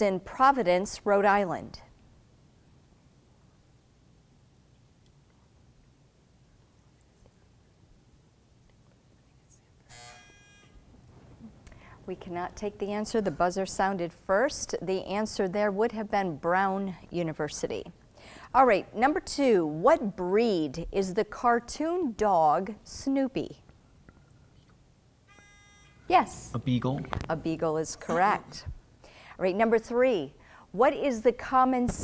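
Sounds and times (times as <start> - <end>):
electronic buzzer: 9.9 - 10.8, 25.3 - 26.6.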